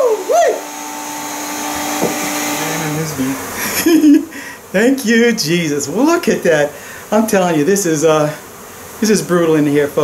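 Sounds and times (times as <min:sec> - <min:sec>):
vacuum motor humming: 0:00.0 - 0:09.7.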